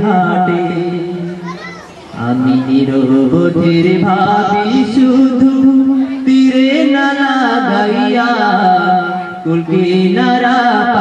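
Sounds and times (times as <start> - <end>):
man singing into a microphone: 0.0 - 1.4, 2.2 - 11.0
children's voices: 1.1 - 3.0.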